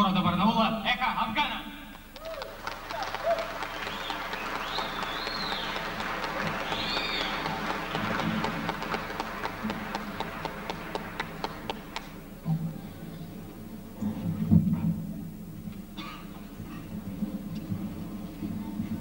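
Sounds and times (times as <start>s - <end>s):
audience applauding: 2.0s - 12.4s
high sliding whistles: 6.4s - 7.6s.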